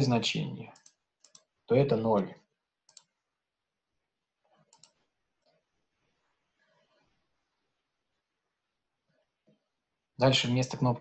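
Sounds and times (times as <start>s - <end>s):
computer mouse clicks: 0.7s - 1.6s, 2.8s - 3.2s, 4.4s - 5.7s.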